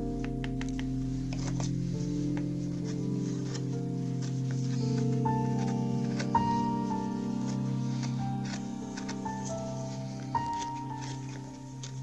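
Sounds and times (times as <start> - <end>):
ambient music with sustained chords: 0.0 - 12.0.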